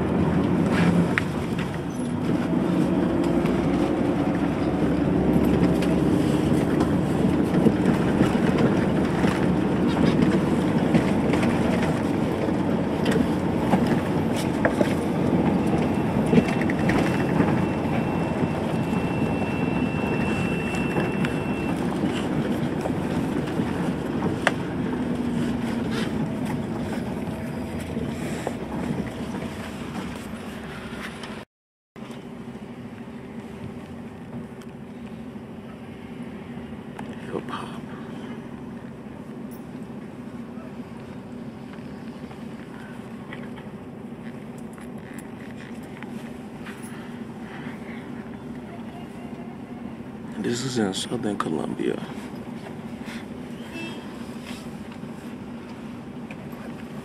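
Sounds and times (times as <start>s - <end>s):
rattles and clicks: 0.0s - 31.4s
engine and road noise: 0.0s - 57.0s.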